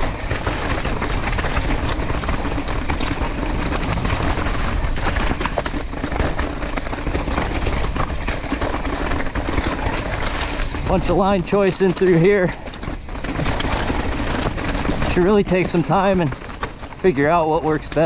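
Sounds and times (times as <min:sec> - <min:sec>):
bike rattling: 0:00.0 - 0:18.0
tyres crunching over rocks: 0:00.0 - 0:18.0
wind rumble on microphone: 0:00.0 - 0:18.0.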